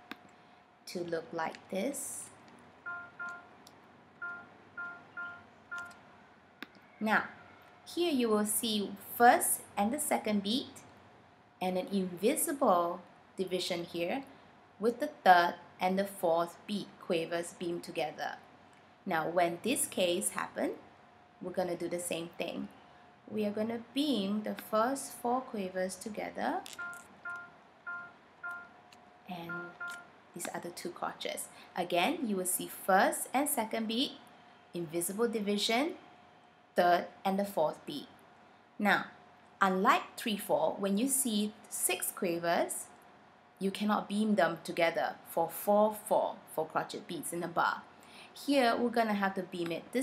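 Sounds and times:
short electronic tones: 2.8s - 3.6s, 4.2s - 6.0s, 26.7s - 28.8s, 29.4s - 30.1s.

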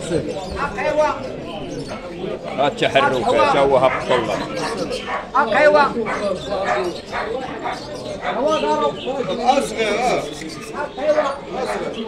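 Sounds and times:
crowd chatter: 0.0s - 12.0s
dog barking: 3.8s - 8.7s.

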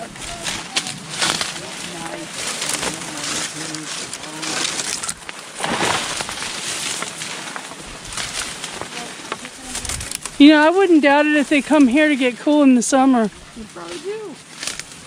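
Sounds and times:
dry fronds and leaves rustling: 0.0s - 15.0s.

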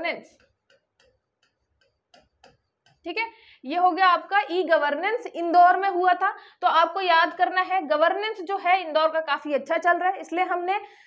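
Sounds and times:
pen tip tapping on touchscreen: 0.3s - 3.1s.

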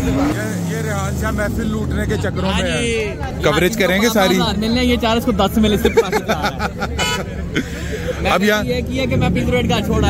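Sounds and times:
car engine revving and idling: 0.0s - 5.8s
people talking: 0.0s - 10.0s.

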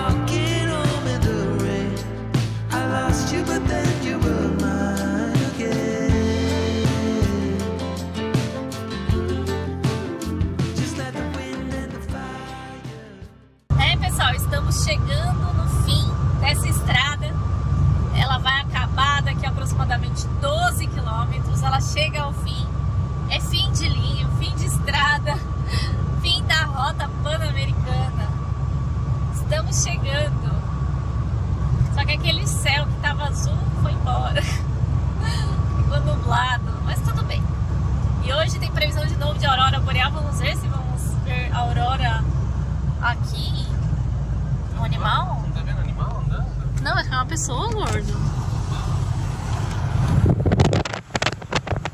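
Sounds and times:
engine and road rumble: 0.0s - 51.9s
thin steady whine: 13.7s - 51.9s.

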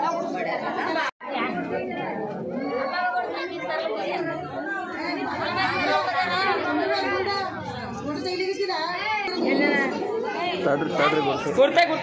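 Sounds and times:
women chattering: 0.0s - 12.0s.

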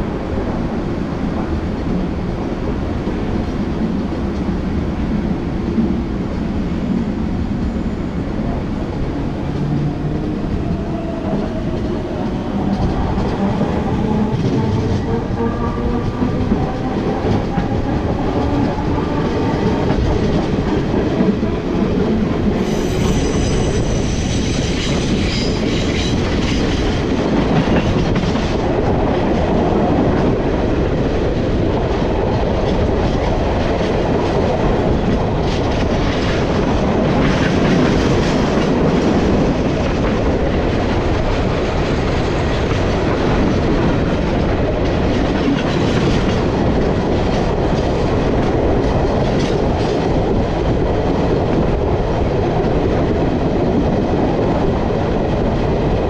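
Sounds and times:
train wheels clacking on rails: 8.5s - 56.0s
high-pitched train squeal: 22.6s - 26.3s.

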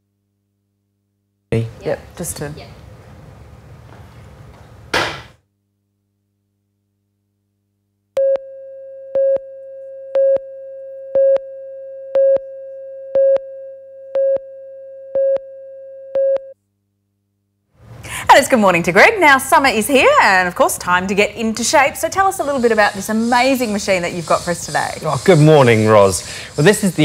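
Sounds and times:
countdown beeps: 8.2s - 16.5s.

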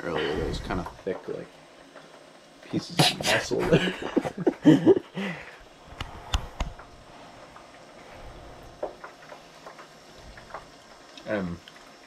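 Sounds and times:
sharp clicks: 5.9s - 6.9s.

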